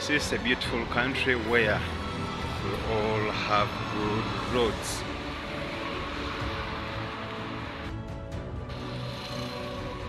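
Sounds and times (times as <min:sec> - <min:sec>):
background music: 0:00.0 - 0:10.0
cars passing: 0:00.0 - 0:10.0.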